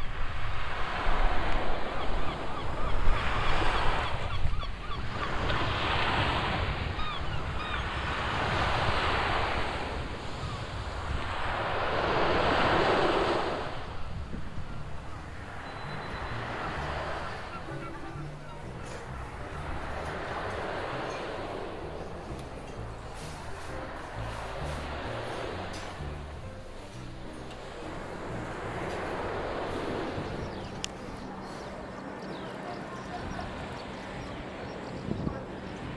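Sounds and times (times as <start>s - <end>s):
sea waves breaking on beach: 0.0s - 26.8s, 27.6s - 34.7s
low wind rumble: 0.0s - 35.9s.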